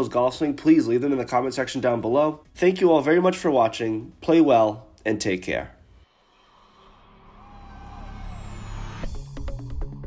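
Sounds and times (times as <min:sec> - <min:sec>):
low rumble riser: 0:06.0 - 0:10.0
high tone gliding downward: 0:06.5 - 0:09.4.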